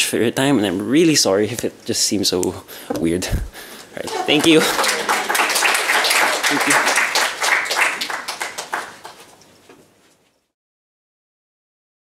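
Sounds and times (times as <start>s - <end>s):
audience applauding: 4.0s - 9.3s.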